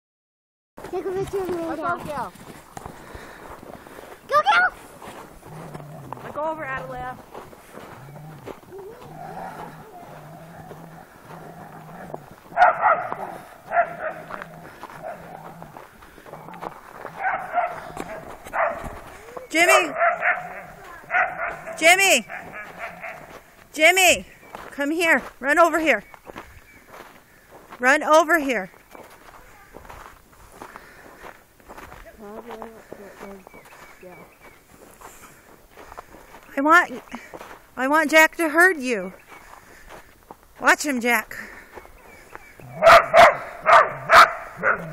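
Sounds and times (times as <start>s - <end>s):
footsteps in snow: 0.8s - 44.9s
dog barking: 9.0s - 10.8s, 12.5s - 15.6s, 17.1s - 19.1s, 19.7s - 23.4s, 42.7s - 44.9s.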